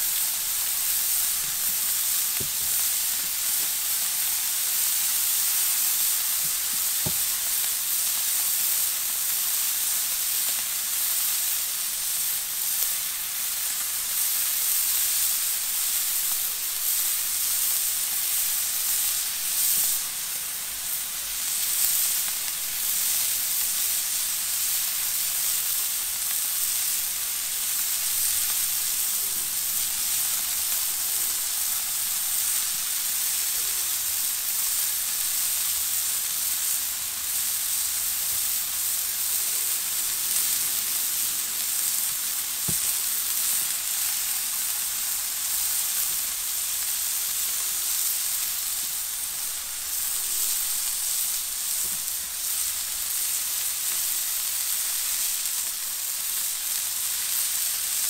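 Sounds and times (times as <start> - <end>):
burger patties sizzling on griddle: 0.0 - 58.0.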